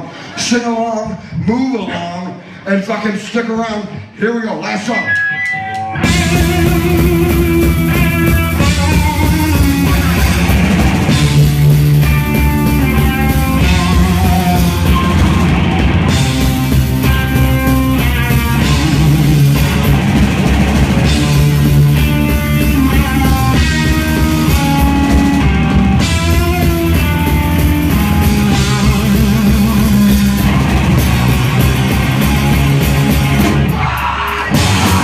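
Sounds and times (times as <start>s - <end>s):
live rock band playing: 4.8s - 35.0s.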